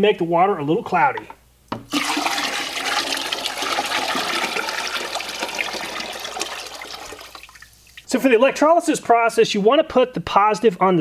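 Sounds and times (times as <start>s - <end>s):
liquid pouring into water: 1.9s - 8.1s.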